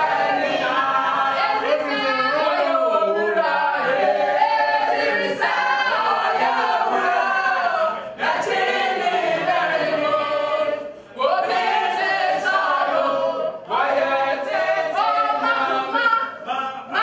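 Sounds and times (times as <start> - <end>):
group singing without instruments: 0.0 - 17.0.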